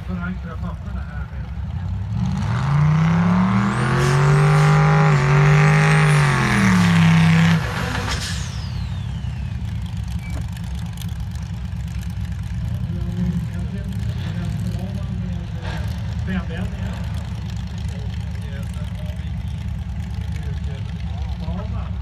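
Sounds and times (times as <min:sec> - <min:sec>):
car engine revving hard: 0:01.8 - 0:09.8.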